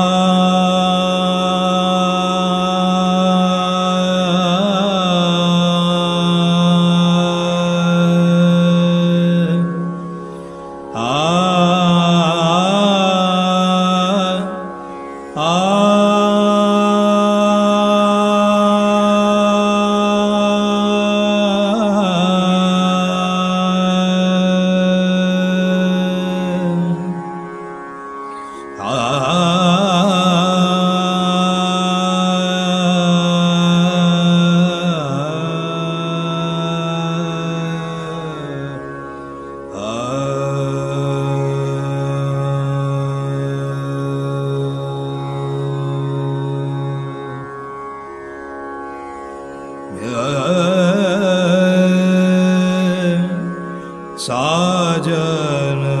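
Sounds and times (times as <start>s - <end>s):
man singing classical vocal: 0.0s - 27.7s, 28.5s - 47.8s, 49.9s - 56.0s.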